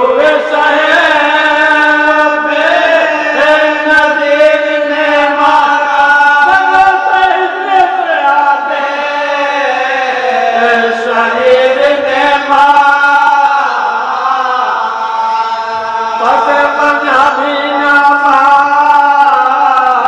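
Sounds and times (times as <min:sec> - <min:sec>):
group of men chanting: 0:00.0 - 0:20.0
lead reciter chanting: 0:00.0 - 0:20.0.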